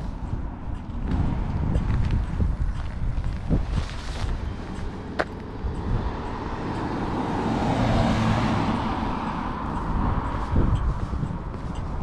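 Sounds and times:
car passing by: 3.6 - 12.0.

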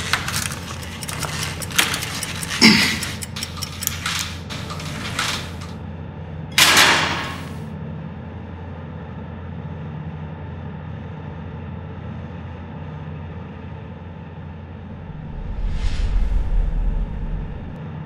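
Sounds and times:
low drone: 14.9 - 17.8
rising whoosh: 15.0 - 17.8.

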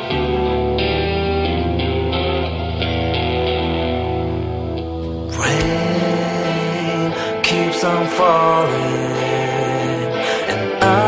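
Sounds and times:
electric guitar picking notes: 0.0 - 11.0
slow instrumental rock music: 0.0 - 11.0.

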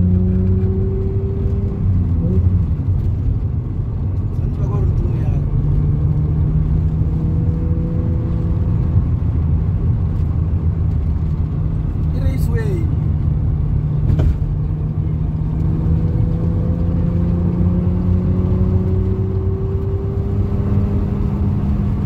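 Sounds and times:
car engine and road drone: 0.0 - 22.0.

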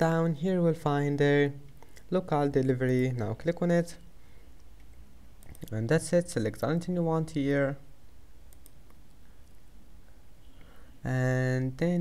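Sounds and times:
low steady hum: 0.0 - 12.0
computer mouse click: 4.6 - 5.8, 8.5 - 9.6.

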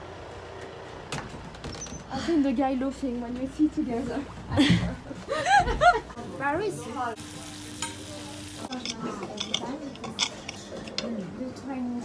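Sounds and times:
steak sizzling on hot plate: 7.2 - 10.6
knife and fork clicking on plate: 8.7 - 11.1.

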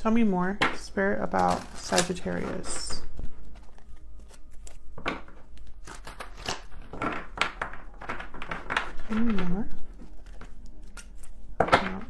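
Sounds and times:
cards being shuffled by hand: 1.2 - 12.0.

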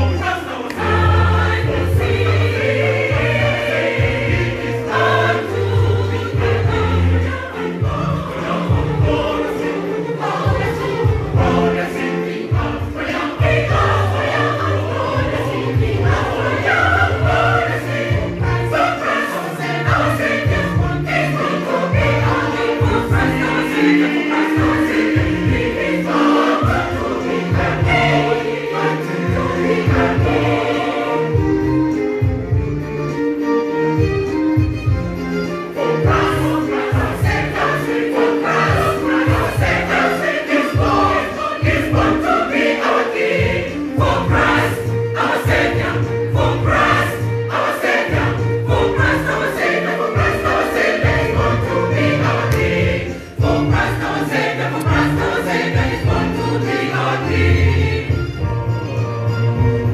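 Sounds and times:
choir singing gospel song: 0.0 - 32.7, 35.5 - 58.8.

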